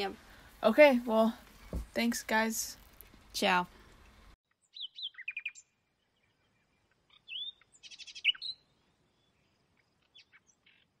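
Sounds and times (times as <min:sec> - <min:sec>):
birds chirping and trilling: 0:03.4 - 0:11.0.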